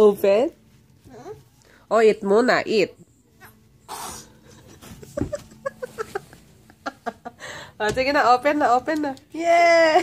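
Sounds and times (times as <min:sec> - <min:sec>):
toddler whining: 0:01.0 - 0:01.5.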